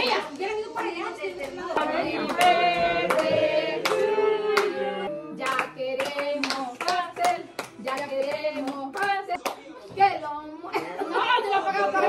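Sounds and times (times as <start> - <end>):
group singing: 0.0 - 9.6
rhythmic hand claps: 1.4 - 9.6.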